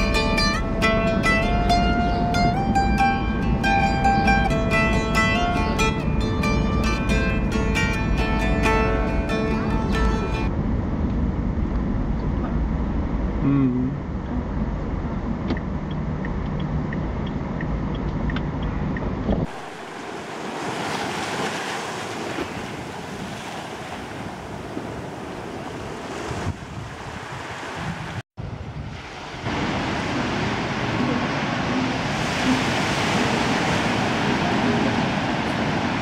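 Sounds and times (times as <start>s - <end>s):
car road and engine rumble: 0.0s - 36.0s
wind rushing over microphone: 17.4s - 36.0s
ocean surf breaking: 19.4s - 36.0s.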